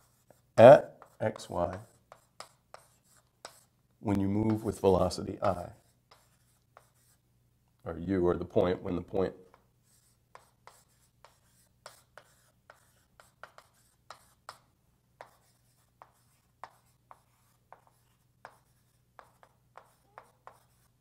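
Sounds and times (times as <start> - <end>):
faint writing taps and strokes: 0.0 - 7.9, 8.5 - 21.0.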